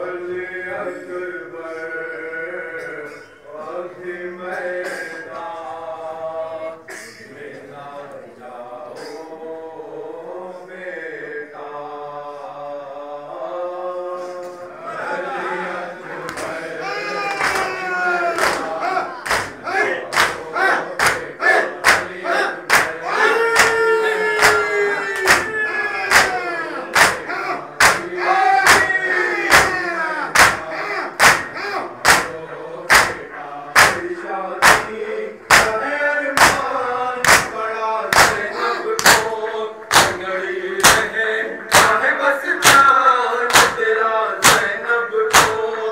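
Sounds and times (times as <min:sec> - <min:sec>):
men chanting over microphone: 0:00.0 - 0:45.9
chest slaps in unison: 0:22.7 - 0:23.0, 0:27.8 - 0:28.9, 0:30.4 - 0:33.2, 0:34.6 - 0:35.8, 0:36.4 - 0:39.3, 0:39.9 - 0:40.2, 0:40.8 - 0:41.1, 0:41.7 - 0:42.0, 0:42.6 - 0:42.9, 0:43.5 - 0:44.7, 0:45.3 - 0:45.7.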